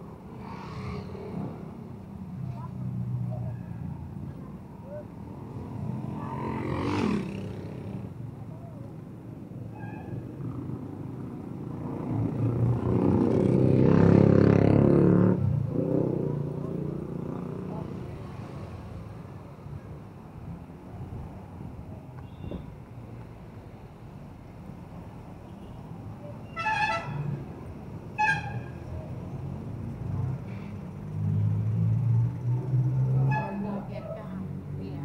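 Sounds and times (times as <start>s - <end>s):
cars driving past: 0.0s - 8.2s, 10.1s - 35.0s.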